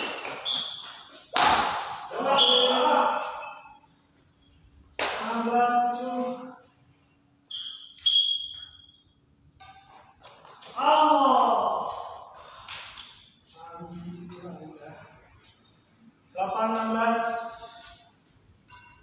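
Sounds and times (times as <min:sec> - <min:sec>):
racket hitting shuttlecock: 0:00.0 - 0:02.8
sneaker squeaks on court floor: 0:00.0 - 0:04.0, 0:07.3 - 0:10.8.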